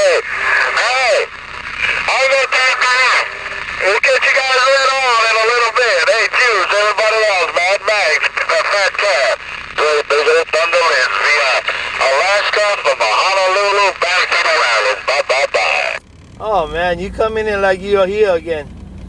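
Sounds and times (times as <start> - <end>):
radio hiss: 0.0 - 16.0
voice over radio speaker: 0.0 - 18.7.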